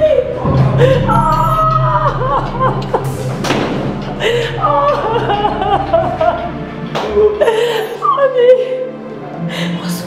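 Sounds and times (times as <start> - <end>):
woman wailing sobs: 0.0 - 3.2, 4.1 - 9.0.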